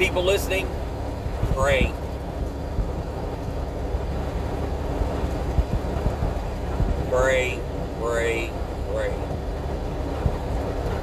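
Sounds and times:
truck engine and road rumble: 0:00.0 - 0:11.0.

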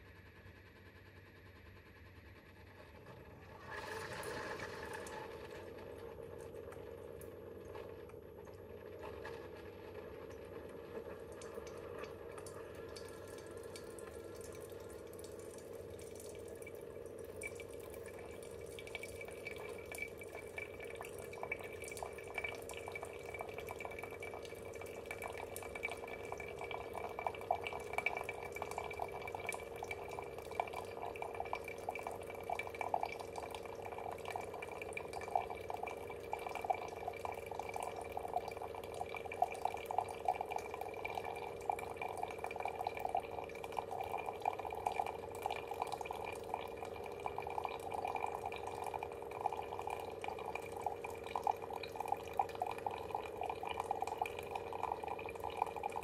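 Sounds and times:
steady machine hum: 0:00.0 - 0:56.0
coffee pouring into a mug: 0:03.3 - 0:56.0.

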